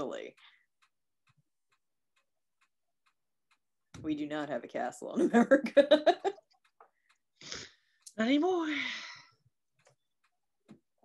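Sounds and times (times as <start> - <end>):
faint regular ticks: 0.3 - 4.0, 6.2 - 8.5, 9.2 - 11.0.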